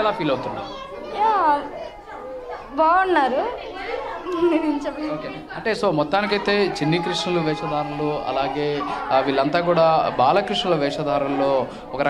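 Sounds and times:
children chattering and calling: 0:00.0 - 0:12.0
woman speaking: 0:02.7 - 0:03.6.

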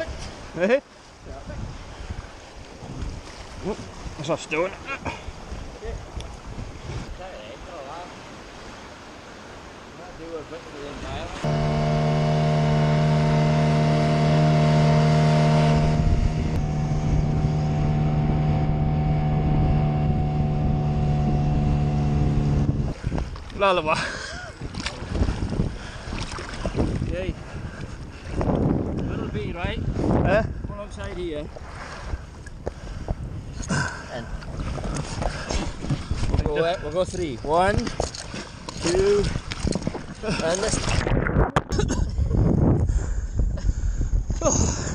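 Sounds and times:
wind buffeting microphone: 0:01.2 - 0:04.4, 0:05.0 - 0:07.4, 0:15.7 - 0:44.9
water rushing: 0:02.3 - 0:28.2
outboard motor running: 0:11.4 - 0:23.2.

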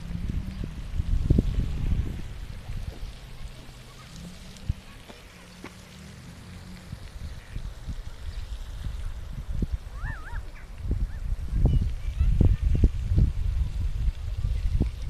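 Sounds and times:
wind rumbling on microphone: 0:00.0 - 0:15.0.

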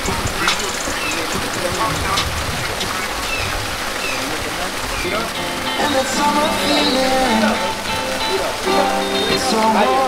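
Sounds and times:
people talking: 0:00.0 - 0:03.1, 0:04.0 - 0:10.0
steady rushing hiss: 0:00.0 - 0:10.0.

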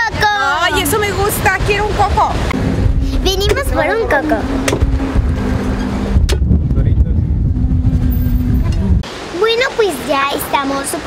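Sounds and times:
vehicle engine rumbling: 0:00.0 - 0:09.1.

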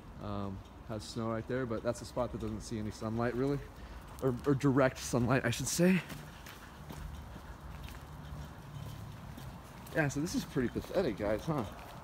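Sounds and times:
footsteps walking: 0:02.1 - 0:12.0.

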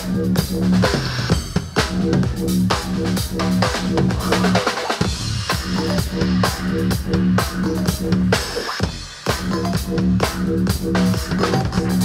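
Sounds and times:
drum kit beat: 0:00.0 - 0:12.0
pulsing keyboard bass line: 0:00.0 - 0:12.0.

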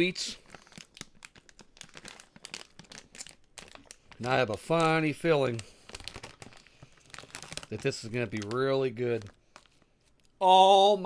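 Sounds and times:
popcorn bag crinkling: 0:00.0 - 0:10.4.

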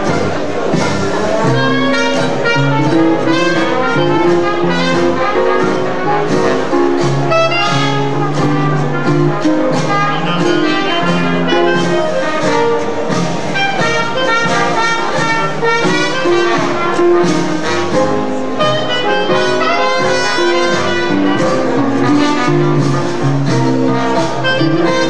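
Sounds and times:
jazz band playing live: 0:00.0 - 0:25.0.

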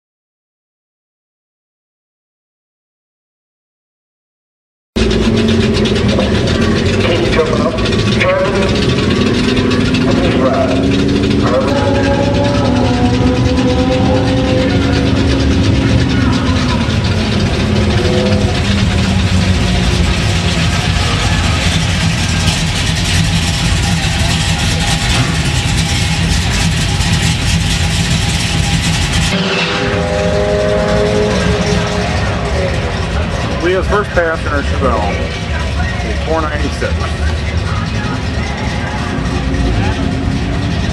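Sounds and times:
loud vtwo engine revving: 0:05.0 - 0:40.9.

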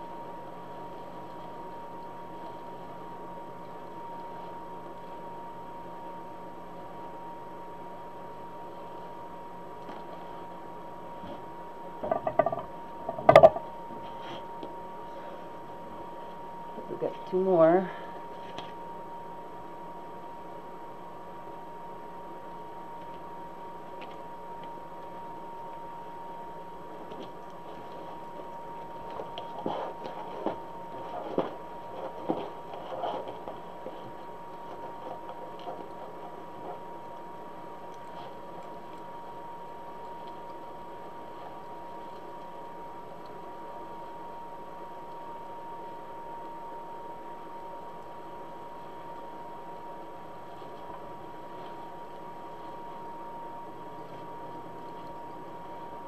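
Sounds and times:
faint high hum: 0:00.0 - 0:56.0.

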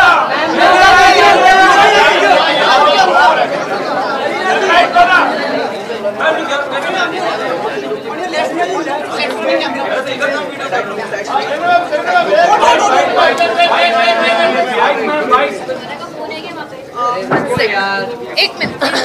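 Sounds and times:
photographers chattering and calling out: 0:00.0 - 0:19.0.

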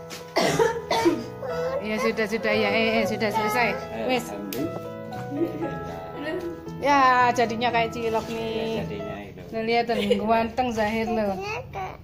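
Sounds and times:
background music: 0:00.0 - 0:11.1
person coughing: 0:00.4 - 0:01.8.

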